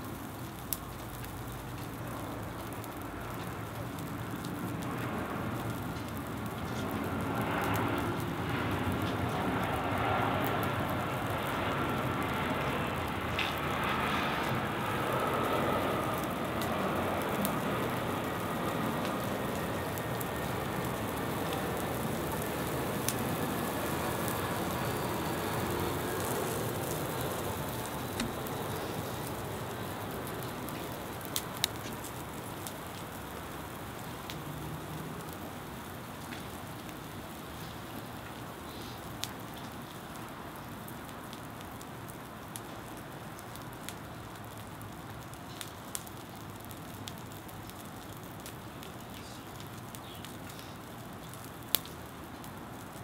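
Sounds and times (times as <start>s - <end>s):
fire crackling: 0.0s - 53.0s.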